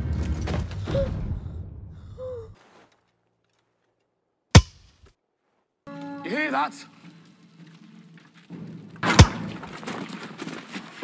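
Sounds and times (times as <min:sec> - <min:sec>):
low rumble: 0:00.0 - 0:02.6.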